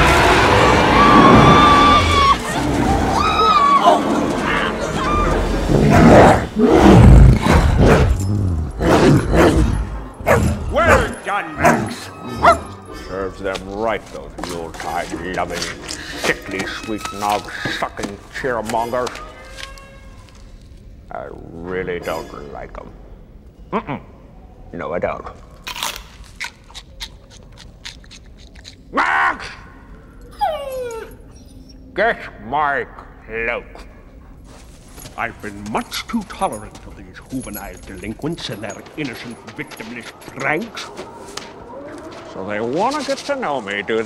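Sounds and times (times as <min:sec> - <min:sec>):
background film music: 0:00.0 - 0:44.0
dog whining: 0:30.2 - 0:31.9.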